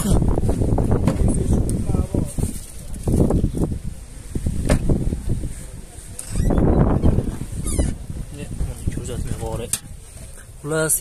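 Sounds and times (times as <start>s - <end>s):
high squeak: 6.2s - 8.0s.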